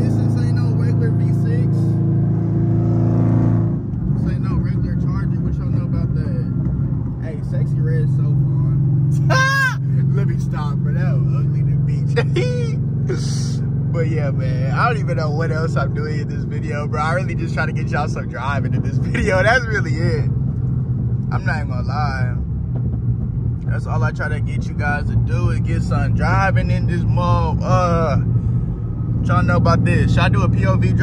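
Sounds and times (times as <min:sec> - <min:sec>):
car engine droning: 0:00.0 - 0:31.0.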